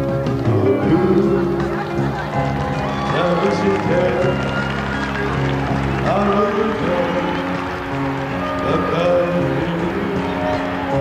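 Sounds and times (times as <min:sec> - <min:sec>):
music: 0:00.0 - 0:11.0
voice singing with sliding pitch: 0:00.5 - 0:05.4, 0:06.0 - 0:11.0.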